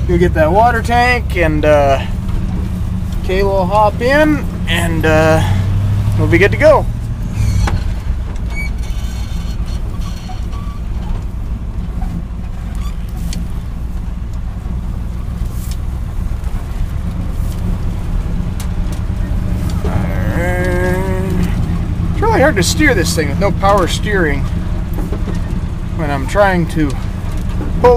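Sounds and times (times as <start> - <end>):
truck engine running: 0.0 - 27.9.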